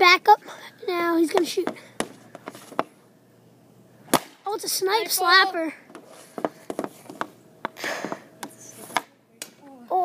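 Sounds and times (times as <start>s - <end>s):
puck hitting net or ground: 1.3s - 2.9s, 4.1s - 4.4s, 5.9s - 9.6s
hockey stick striking pad and puck: 6.0s - 9.1s.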